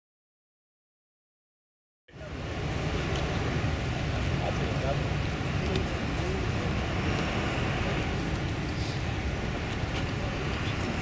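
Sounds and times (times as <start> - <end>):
outdoor low rumble: 2.1 - 11.0.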